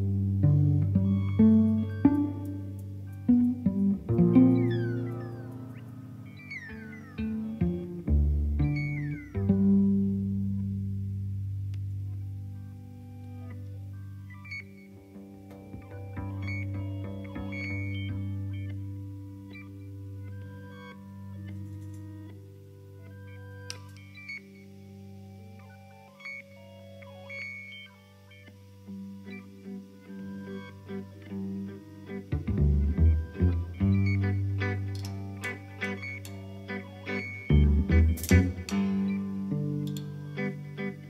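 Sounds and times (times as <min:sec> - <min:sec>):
guitar cello and drums music: 0:00.0 - 0:12.0, 0:14.6 - 0:19.8, 0:28.8 - 0:41.0
steady low drone: 0:00.0 - 0:24.0, 0:27.8 - 0:41.0
high pitch-bending notes: 0:00.0 - 0:41.0
high sliding falling tones: 0:01.0 - 0:09.6.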